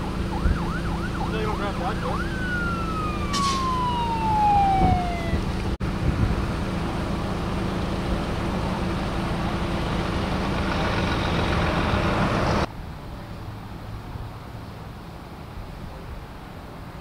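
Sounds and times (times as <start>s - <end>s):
fire engine siren winding down: 0.0s - 5.8s.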